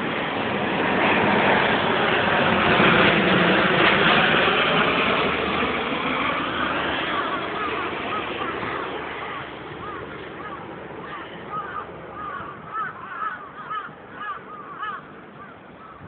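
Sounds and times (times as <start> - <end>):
propeller airplane flying overhead: 0.0 - 16.0
crows cawing: 7.0 - 16.0.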